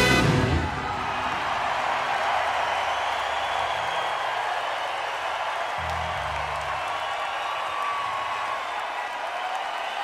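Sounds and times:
crowd applauding and cheering: 0.0 - 10.0.

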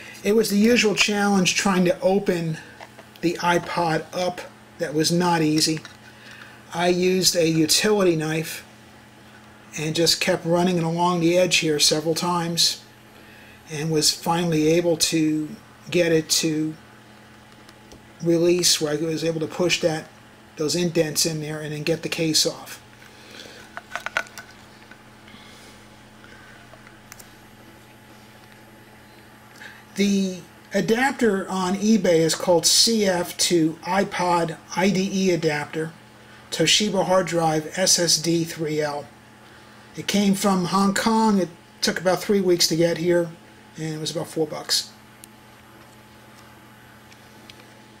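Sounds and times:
steady hiss: 0.0 - 17.3
steady low hum: 0.0 - 48.0.

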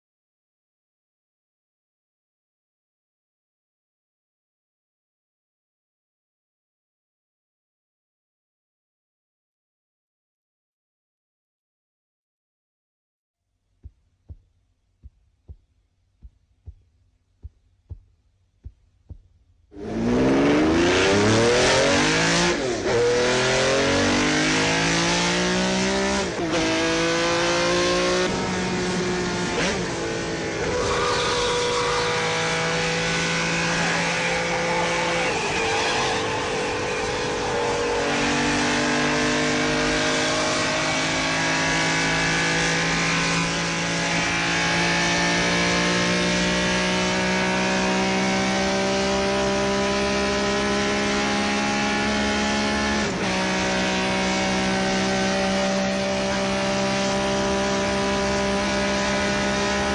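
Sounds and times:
car engine revving hard: 19.7 - 59.9.

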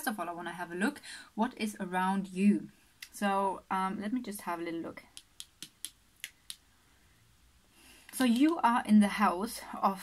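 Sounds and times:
fingernails tapping on cards: 5.1 - 6.6.

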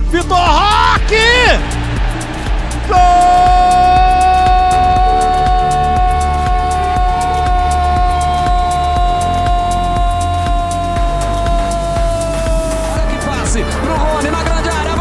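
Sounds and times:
commentator shouting: 0.0 - 1.8, 2.8 - 15.0
music with steady bass beat: 0.0 - 15.0.

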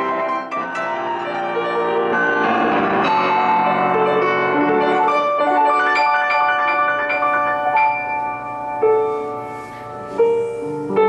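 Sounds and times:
grand piano legato playing: 0.0 - 11.0.

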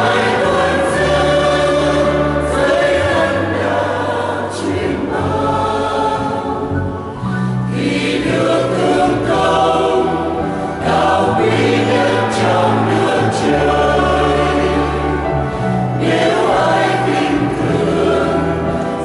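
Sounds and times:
choir singing a hymn: 0.0 - 19.0.

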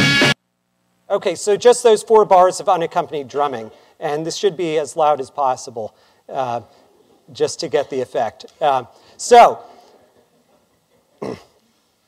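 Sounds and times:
man clearing his throat: 11.1 - 11.6.

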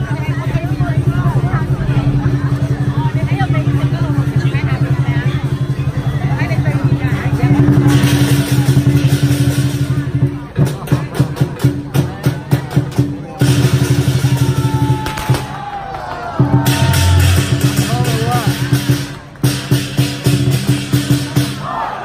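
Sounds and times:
drum fast steady roll: 0.0 - 15.6, 16.2 - 21.6
crowd voices: 0.0 - 22.0.

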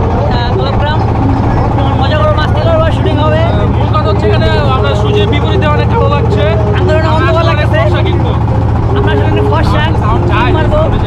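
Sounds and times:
boat engine drone: 0.0 - 11.0
men talking: 0.0 - 11.0.

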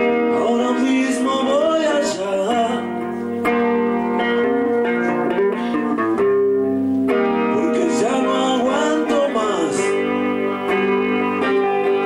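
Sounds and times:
guitar music with sliding notes: 0.0 - 12.0.

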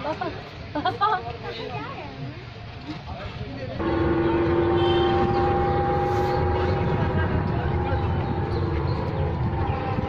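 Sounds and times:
electric bus low rumble: 3.8 - 10.0
steady tone with overtones: 3.8 - 10.0.

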